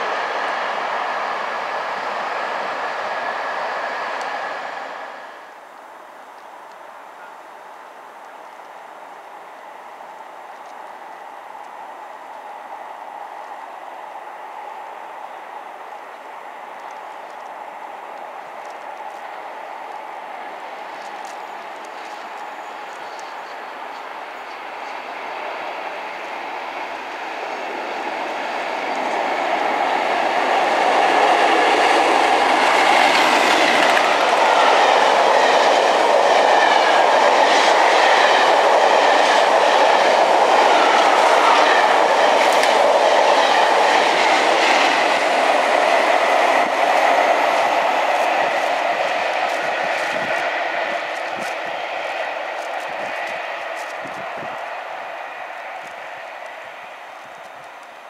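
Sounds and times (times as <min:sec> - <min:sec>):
passenger train passing: 0:00.0 - 0:58.0
wheels clacking over rail joints: 0:27.7 - 0:54.7.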